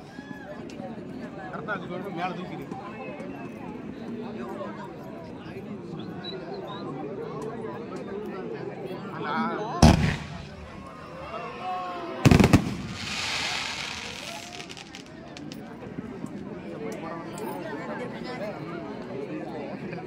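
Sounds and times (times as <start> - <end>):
voices of onlookers: 8.0 - 20.0
fireworks crackling hiss: 9.8 - 11.4, 12.3 - 15.7
fireworks bangs: 9.8 - 11.6, 12.2 - 15.7.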